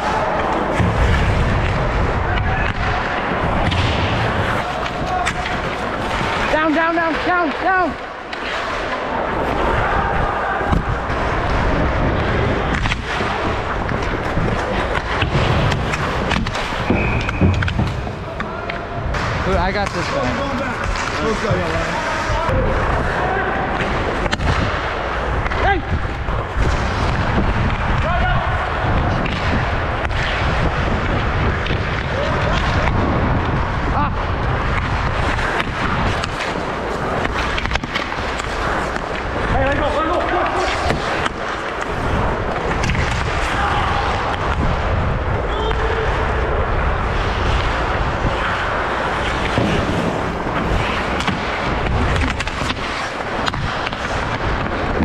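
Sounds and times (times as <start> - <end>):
hockey sticks knocking: 0.0 - 9.8, 10.6 - 33.6, 34.4 - 44.8, 47.2 - 55.0
skate blades scraping ice: 0.0 - 18.3, 20.0 - 55.0.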